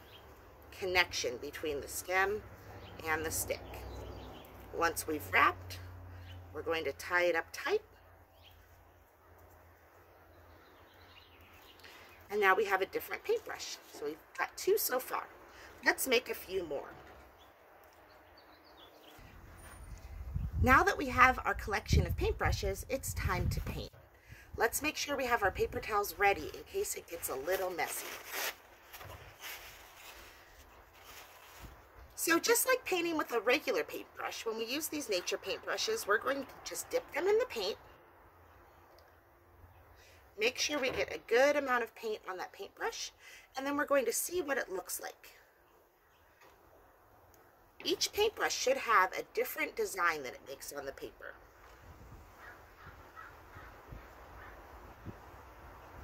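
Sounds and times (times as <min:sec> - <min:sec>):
paper towel rustling: 0:27.1 - 0:32.0
faint bird calls: 0:52.4 - 0:54.7.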